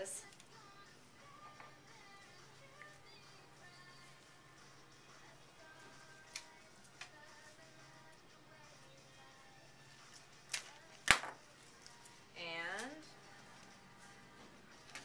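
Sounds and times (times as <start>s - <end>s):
faint background music: 0.0s - 15.0s
hand cutters snipping stems: 6.2s - 7.2s.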